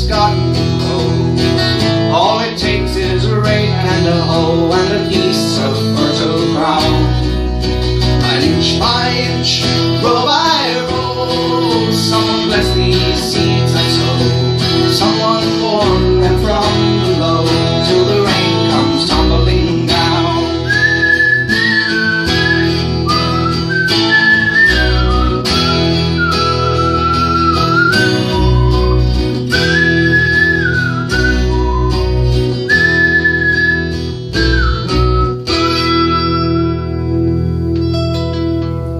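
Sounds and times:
acoustic guitar strummed and picked: 0:00.0 - 0:38.9
high whistled melody: 0:18.1 - 0:37.4.

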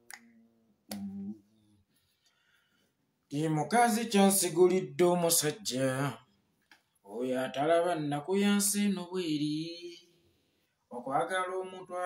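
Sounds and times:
man's voice: 0:03.3 - 0:06.3, 0:07.1 - 0:10.1, 0:10.9 - 0:12.0.

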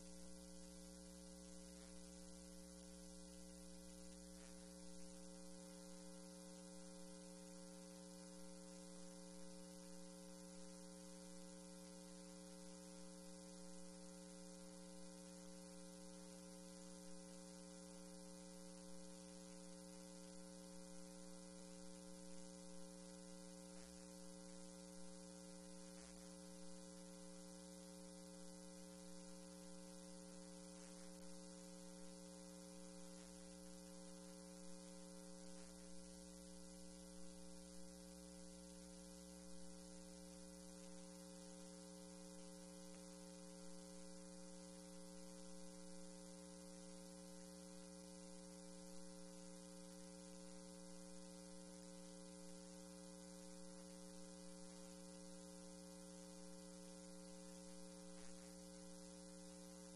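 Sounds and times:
low electrical hum: 0:00.0 - 0:59.9.

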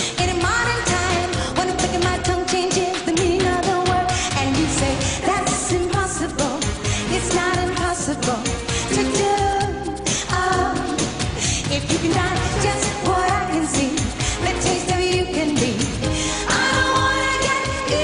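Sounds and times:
driving drum beat: 0:00.0 - 0:18.0
live pop band: 0:00.0 - 0:18.0
woman singing lead: 0:00.0 - 0:18.0.

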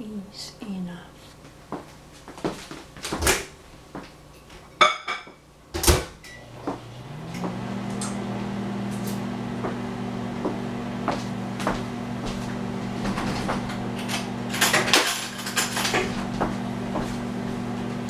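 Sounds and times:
microwave oven humming: 0:01.4 - 0:18.0.

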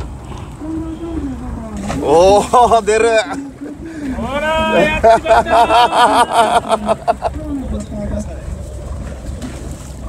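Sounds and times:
voices calling out: 0:00.0 - 0:08.8
low rumble of boat at sea: 0:00.0 - 0:10.0.

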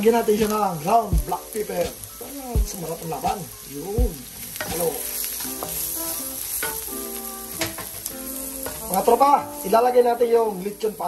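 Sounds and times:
background music of held notes: 0:00.0 - 0:11.0
onions sizzling in a pan: 0:00.0 - 0:11.0.

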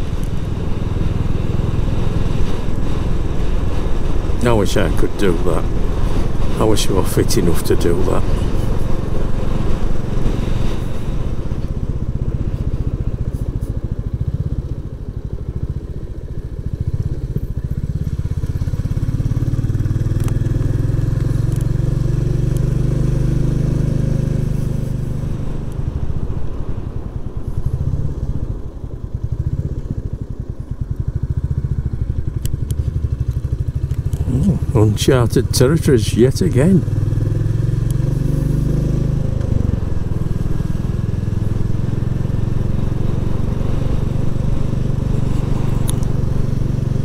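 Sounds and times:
motorcycle engine running: 0:00.0 - 0:47.0.

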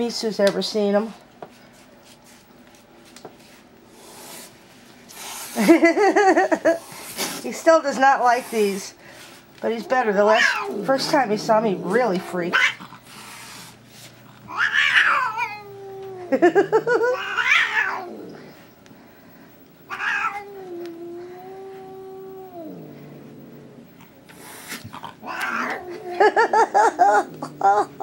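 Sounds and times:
cat yowling: 0:10.3 - 0:10.8, 0:12.5 - 0:12.8, 0:14.5 - 0:16.4, 0:17.0 - 0:18.3, 0:19.9 - 0:22.8, 0:25.2 - 0:26.3.

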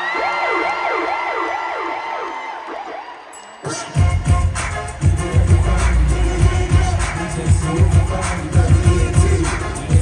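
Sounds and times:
siren sound effect: 0:00.0 - 0:03.4.

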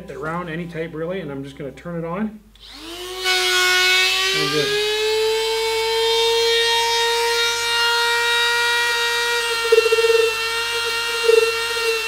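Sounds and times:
rotary tool grinding whine: 0:02.6 - 0:12.0
grinding bit biting into foam: 0:09.3 - 0:12.0.

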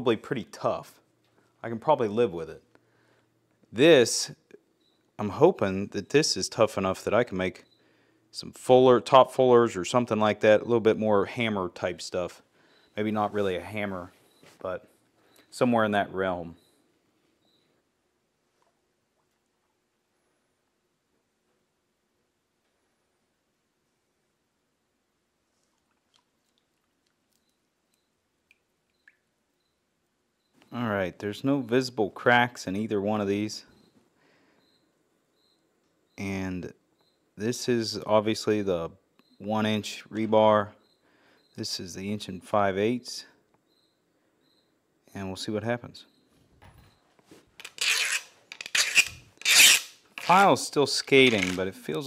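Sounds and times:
faint small clicks: 0:25.6 - 0:29.2
file scraping on steel: 0:47.6 - 0:50.4.

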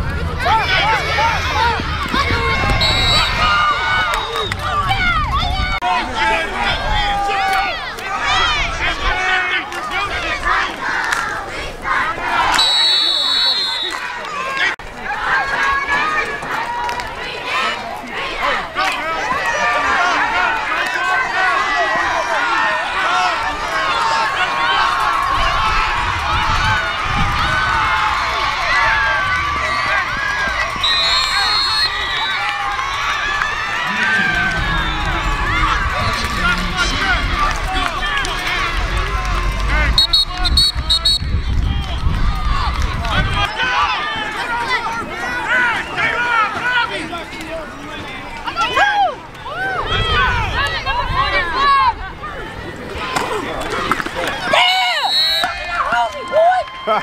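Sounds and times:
spectators yelling and cheering: 0:00.0 - 0:57.0
short whistle blasts: 0:02.8 - 0:03.5, 0:12.6 - 0:14.0, 0:30.8 - 0:32.4, 0:40.0 - 0:41.3, 0:55.0 - 0:55.6.

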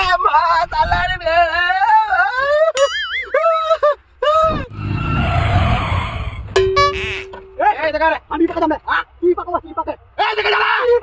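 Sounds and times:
motorcycle skidding on dirt: 0:04.6 - 0:06.6
steady tone: 0:04.6 - 0:07.9.

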